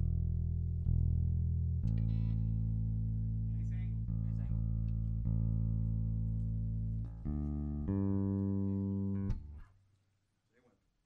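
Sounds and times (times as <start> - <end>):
electric guitar notes ringing: 7.2 - 9.6.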